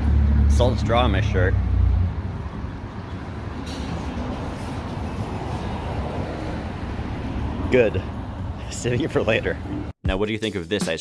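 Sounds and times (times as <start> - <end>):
large vehicle passing: 0.0 - 9.9.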